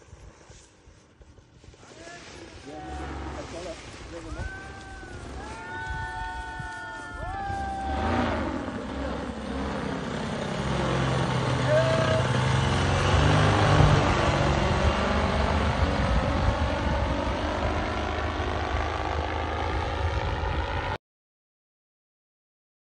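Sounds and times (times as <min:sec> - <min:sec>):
paramotor engine flying overhead: 0:01.8 - 0:21.0.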